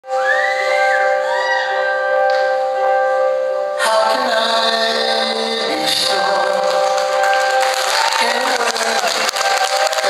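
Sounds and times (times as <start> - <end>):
full live band playing: 0.0 - 10.0.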